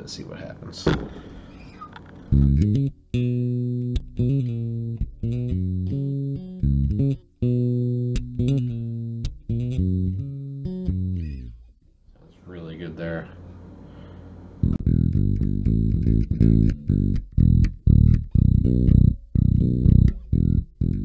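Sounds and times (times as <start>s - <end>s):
bass guitar sustained notes: 2.2s - 11.8s, 14.6s - 21.0s.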